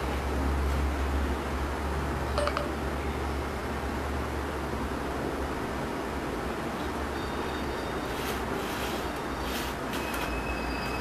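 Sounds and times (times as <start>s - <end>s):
low hum and hiss: 0.0s - 10.0s.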